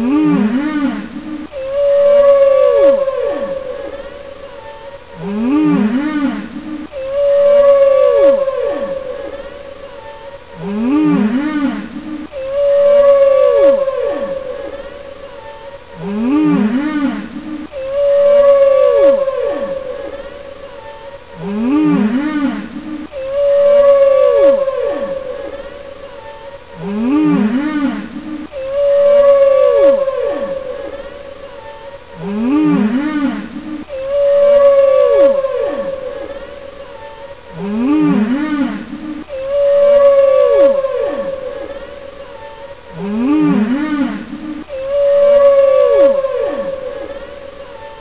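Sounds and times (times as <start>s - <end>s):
gliding moaning whale-like calls: 0.0s - 48.0s.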